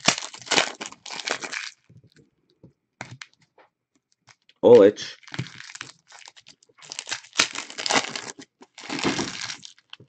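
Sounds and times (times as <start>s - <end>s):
foil wrapper tearing and crinkling: 0.0s - 1.9s, 5.2s - 10.0s.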